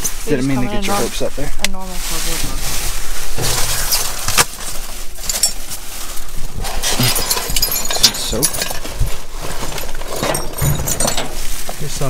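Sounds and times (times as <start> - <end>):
trash rustling and crinkling: 0.0 - 12.0.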